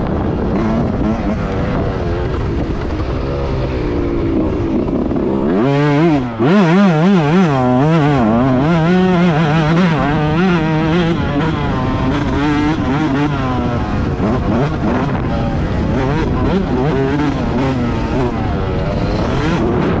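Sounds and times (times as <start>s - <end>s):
two-stroke motorcycle engine revving: 0.0s - 20.0s.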